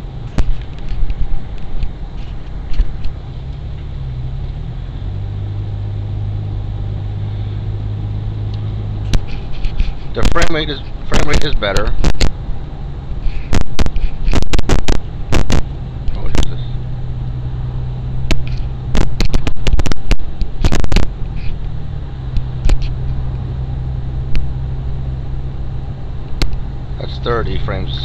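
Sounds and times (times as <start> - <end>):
car driving drone: 0.0 - 28.0
sharp clicks and knocks: 0.3 - 3.9, 8.5 - 12.4, 13.1 - 16.5, 18.2 - 23.2, 26.3 - 26.6.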